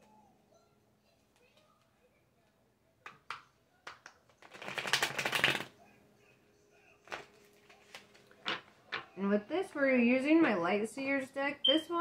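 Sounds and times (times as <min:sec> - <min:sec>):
cards tapping and snapping: 0:03.0 - 0:05.7, 0:07.1 - 0:09.1
cards fluttering while shuffled: 0:03.9 - 0:05.7.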